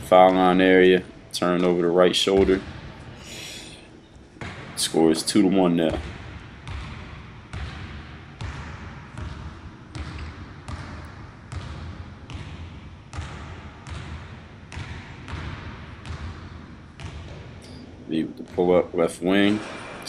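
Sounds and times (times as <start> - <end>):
basketball bouncing on wooden floor: 0.2 - 0.9, 1.6 - 3.1, 4.4 - 17.8, 19.4 - 20.0.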